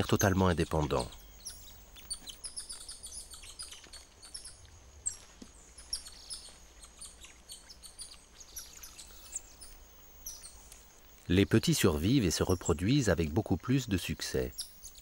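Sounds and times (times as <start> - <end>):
monkeys chirping: 0.0 - 10.8, 11.8 - 15.0.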